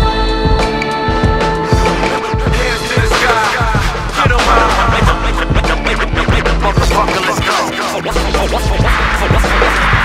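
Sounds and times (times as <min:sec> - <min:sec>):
hip-hop beat: 0:01.6 - 0:10.0.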